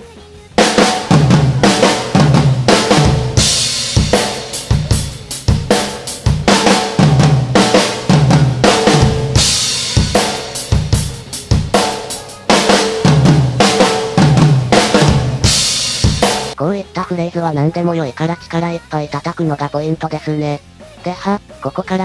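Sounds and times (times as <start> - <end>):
bass drum: 0.6 - 16.6
cymbal crashes: 0.6 - 16.6
snare drum flams: 0.6 - 16.6
tom flams: 0.6 - 16.6.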